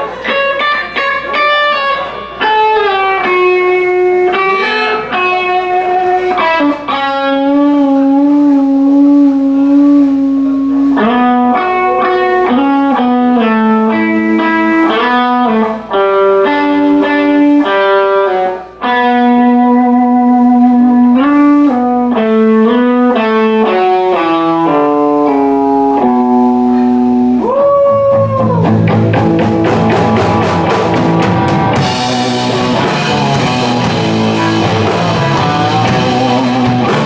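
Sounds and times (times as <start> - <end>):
overdriven electric guitar solo: 0.0 - 37.0.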